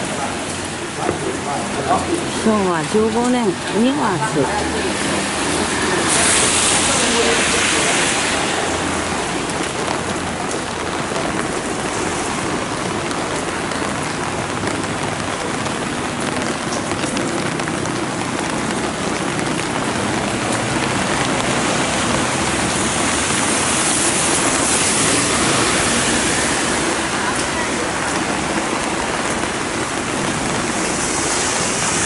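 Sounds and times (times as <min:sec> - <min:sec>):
heavy rain: 0:00.0 - 0:32.0.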